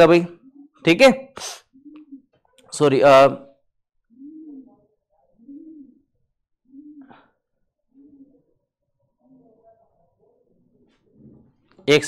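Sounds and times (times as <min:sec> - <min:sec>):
pigeon cooing: 0:00.0 - 0:00.9, 0:01.5 - 0:02.4, 0:04.0 - 0:11.7.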